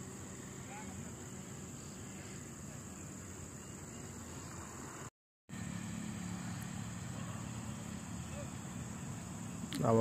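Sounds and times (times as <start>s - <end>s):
high cricket trill: 0.0s - 10.0s
low engine hum: 0.0s - 10.0s.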